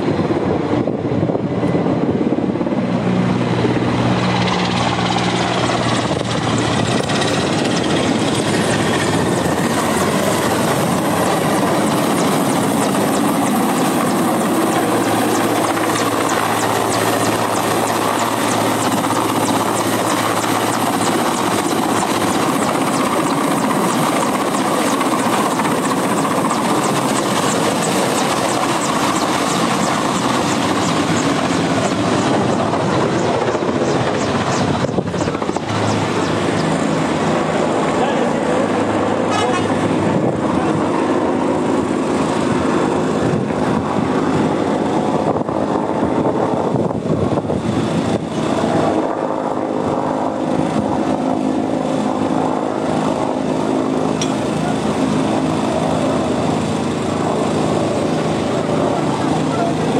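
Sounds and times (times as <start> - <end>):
helicopter rotor and turbines: 0.0 - 59.9.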